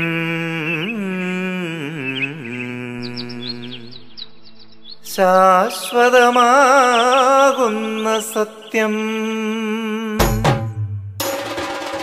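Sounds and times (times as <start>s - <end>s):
person singing long ornamented note: 0.0s - 4.2s, 5.0s - 10.4s
high bird chirps: 0.2s - 9.6s.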